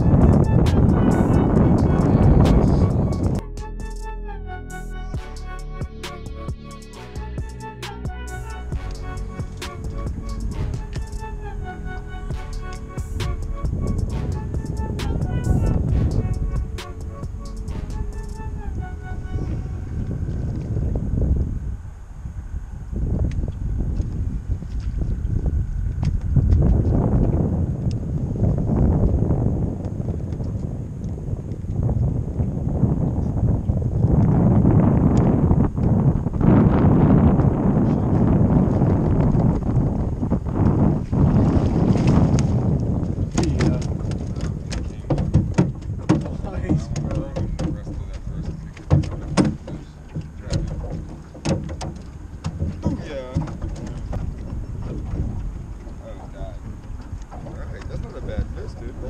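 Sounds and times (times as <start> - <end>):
wind rumbling on microphone: 0.0 - 4.2, 5.1 - 59.0
light clicks and knocks: 43.3 - 55.4.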